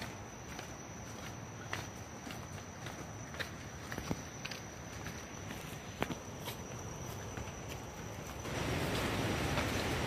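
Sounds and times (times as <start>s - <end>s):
footsteps in flip-flops on dirt: 0.0s - 10.0s.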